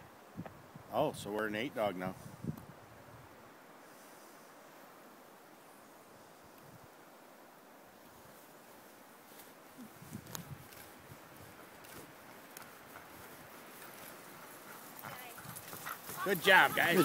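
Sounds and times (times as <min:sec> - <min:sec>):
sled dogs: 0:11.3 - 0:17.0.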